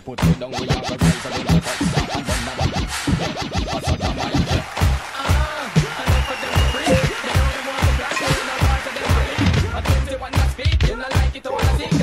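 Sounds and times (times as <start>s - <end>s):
bass-drum beat: 0.0s - 12.0s
turntable scratching: 0.0s - 12.0s.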